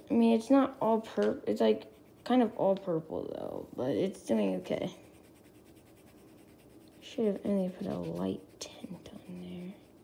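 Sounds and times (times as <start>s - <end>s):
pencil scratching on paper: 0.2s - 10.0s.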